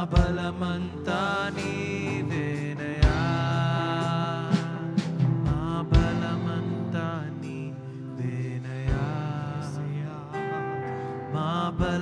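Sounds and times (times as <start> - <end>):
worship band music: 0.0 - 12.0
deep drum hits: 3.0 - 3.6, 4.6 - 6.7.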